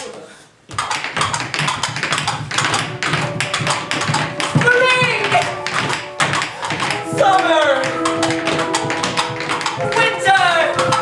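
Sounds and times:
feet tapping on wooden stage: 0.7s - 11.0s.

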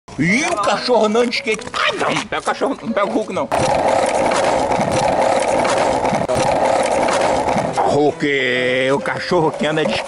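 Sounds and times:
skateboard wheels rolling on asphalt: 3.6s - 7.8s.

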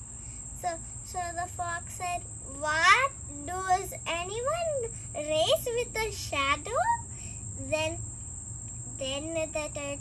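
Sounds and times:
insects singing: 0.0s - 10.0s.

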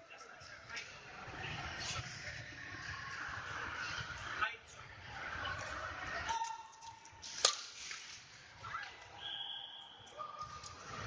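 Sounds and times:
echoing sports hall noise: 0.0s - 11.0s.

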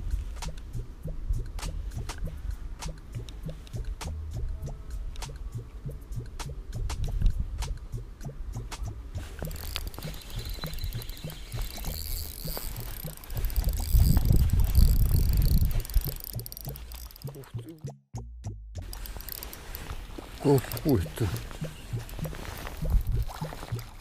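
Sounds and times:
fishing reel ticking: 8.6s - 17.8s, 18.8s - 23.9s.

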